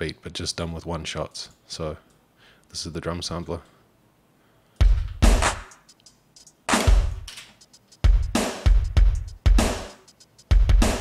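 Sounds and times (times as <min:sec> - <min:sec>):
kick and snare drum hits: 0:04.8 - 0:05.8, 0:06.7 - 0:11.0
hi-hat ticks: 0:04.8 - 0:11.0.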